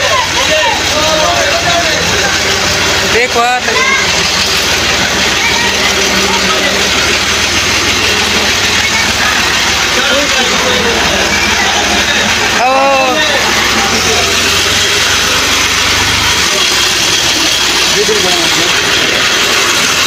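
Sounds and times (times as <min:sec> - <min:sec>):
tractor engine running: 0:00.0 - 0:20.0
voices: 0:00.0 - 0:20.0.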